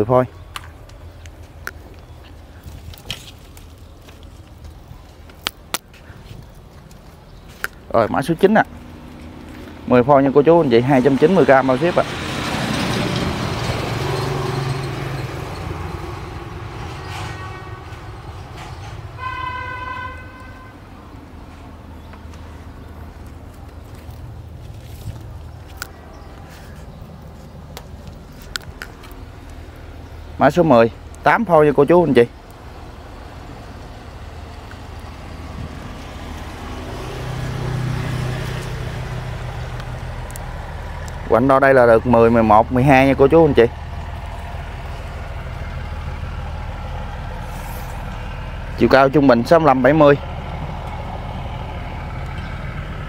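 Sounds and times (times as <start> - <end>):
vehicle passing: 7.8 - 53.0
vehicle horn honk: 17.1 - 18.0, 19.2 - 20.9
motor engine humming: 32.4 - 53.0.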